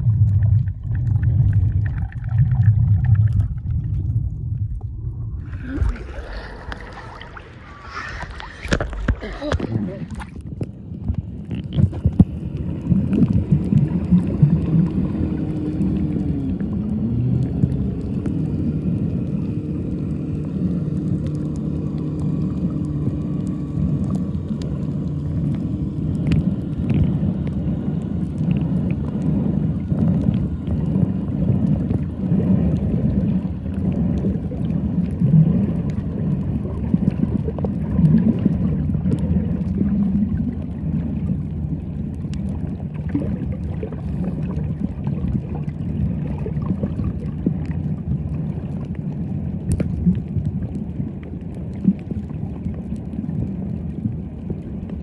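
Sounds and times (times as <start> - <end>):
faint clicks and crackles: 0.0 - 55.0
underwater rumble of moving water: 0.0 - 55.0.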